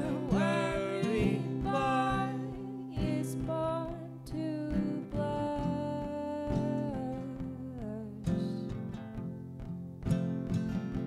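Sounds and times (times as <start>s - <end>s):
woman singing a long note: 0.0s - 8.2s
strummed acoustic guitar: 0.0s - 11.0s.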